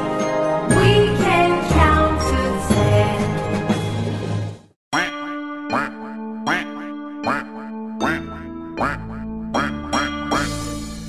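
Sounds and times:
children's song music: 0.0s - 11.0s
cartoon duck quacks: 4.9s - 10.6s.

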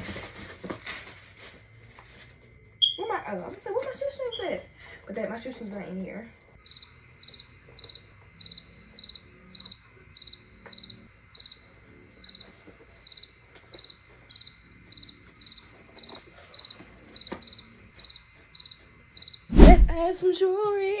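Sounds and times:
cricket chirping: 6.6s - 20.3s.

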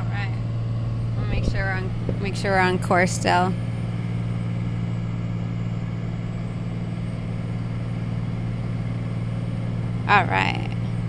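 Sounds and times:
vehicle road and engine drone: 0.0s - 11.0s.

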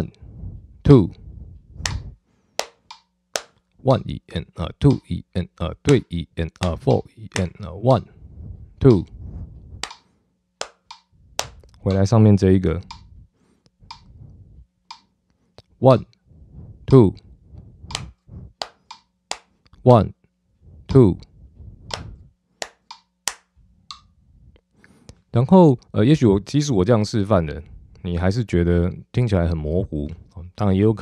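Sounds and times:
hand claps: 2.6s - 3.6s, 6.6s - 7.5s, 10.6s - 12.0s, 17.9s - 19.5s, 21.9s - 23.5s.

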